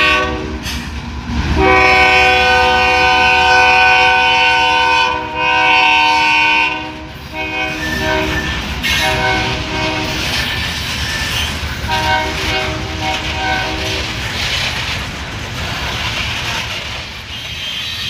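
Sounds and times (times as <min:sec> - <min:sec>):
locomotive air horn blasts: 0:00.0 - 0:00.7, 0:01.6 - 0:10.4, 0:11.9 - 0:14.2
freight train rumble and clatter: 0:00.0 - 0:18.0.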